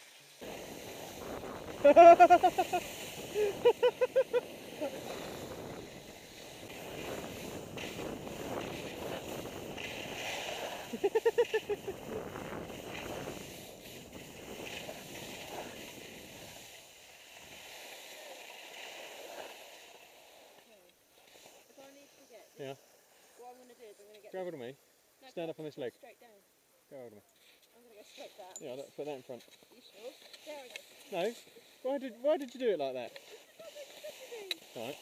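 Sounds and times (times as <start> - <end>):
skis scraping over snow: 0.0 - 23.7, 27.4 - 35.0
wind on microphone: 0.4 - 16.5
person laughing: 1.8 - 5.1, 10.9 - 12.2.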